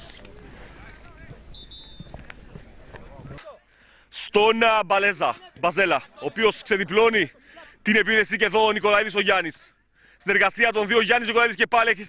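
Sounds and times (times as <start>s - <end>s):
distant shouts and talk: 0.0s - 3.7s
short high whistle: 1.5s - 2.1s.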